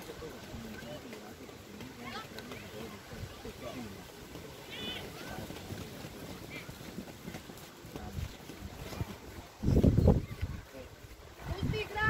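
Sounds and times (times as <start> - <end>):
distant voices calling out: 0.0 - 6.9.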